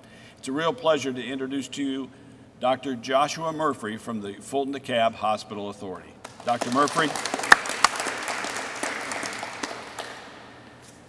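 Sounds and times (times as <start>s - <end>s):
audience applauding: 6.2s - 10.6s.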